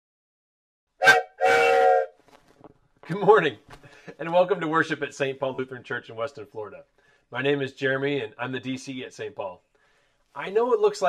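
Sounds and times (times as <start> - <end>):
wooden train whistle blowing: 1.0 - 2.2.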